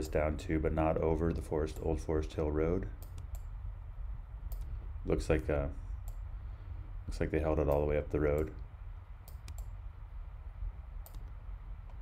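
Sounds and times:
low steady hum: 0:00.0 - 0:12.0
computer clicks: 0:03.0 - 0:03.5, 0:04.5 - 0:04.7, 0:09.2 - 0:09.8, 0:11.0 - 0:12.0.

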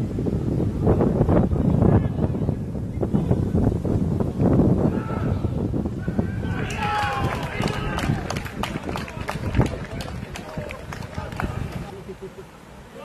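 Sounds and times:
wind rumble on microphone: 0:00.0 - 0:12.3
players shouting: 0:04.8 - 0:11.9.

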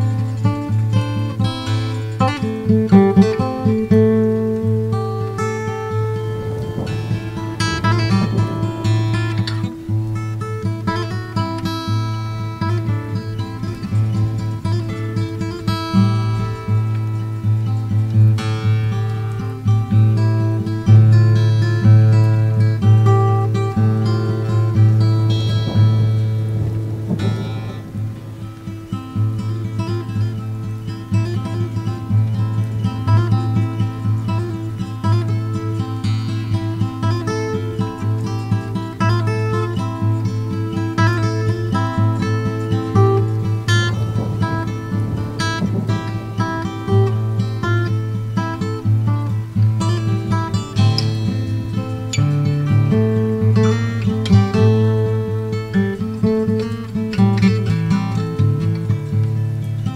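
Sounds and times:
acoustic guitar plucked notes: 0:00.0 - 0:59.9.

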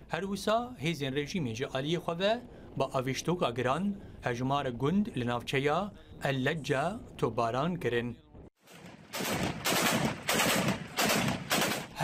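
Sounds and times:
machine gun firing bursts: 0:08.6 - 0:12.0.

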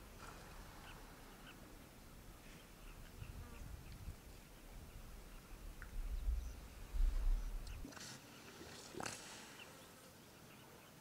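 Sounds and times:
quiet waterside ambience: 0:00.0 - 0:11.0.

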